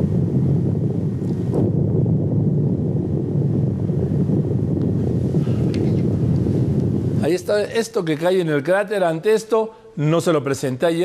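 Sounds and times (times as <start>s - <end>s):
wind buffeting microphone: 0.0s - 8.6s.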